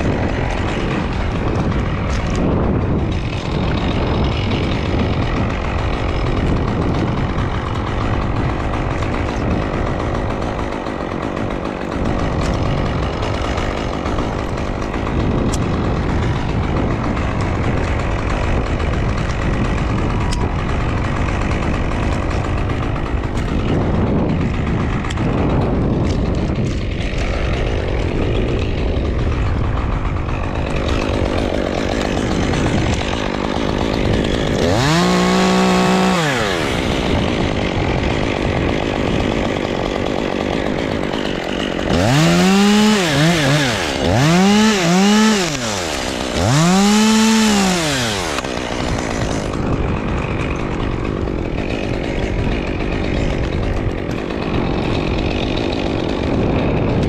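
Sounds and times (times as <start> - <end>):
chainsaw running and revving: 0.0 - 57.0.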